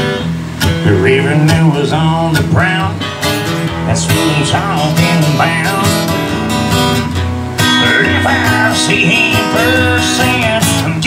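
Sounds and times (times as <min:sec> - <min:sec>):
electric guitar strumming chords: 0:00.0 - 0:11.0.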